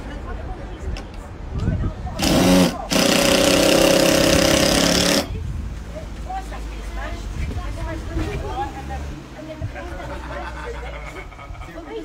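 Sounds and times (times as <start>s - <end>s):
power driver driving screw: 2.2s - 5.3s.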